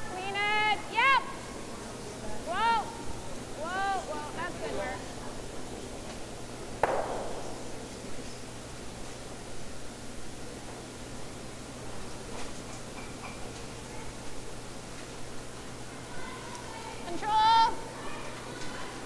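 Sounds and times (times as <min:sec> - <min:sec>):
people shouting sweeping calls: 0:02.4 - 0:05.1.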